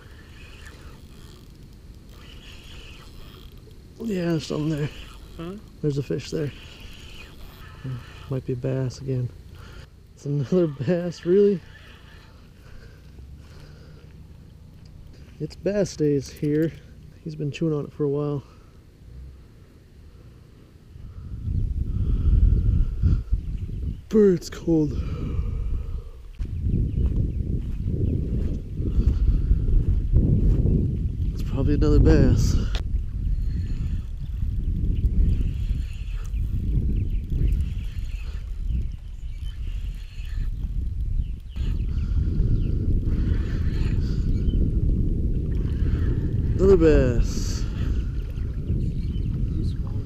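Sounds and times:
wind buffeting microphone: 0.0s - 17.0s, 20.8s - 50.0s
faint high chirps and ticks: 32.7s - 44.7s.

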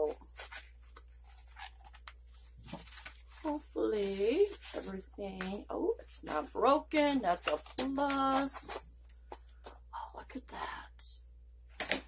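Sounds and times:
cardboard box rustling and scraping: 0.3s - 4.9s.

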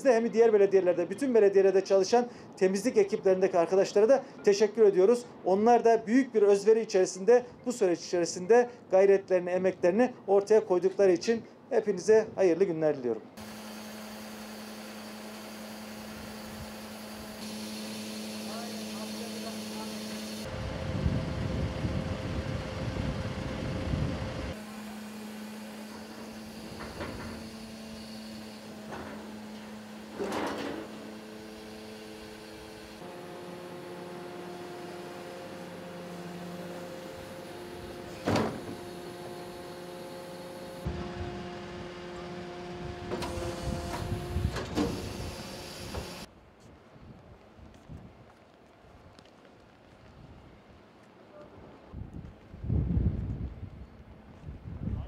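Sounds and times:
bin lifters working: 13.4s - 41.1s, 41.9s - 46.3s
garbage truck engine humming: 13.4s - 46.3s.

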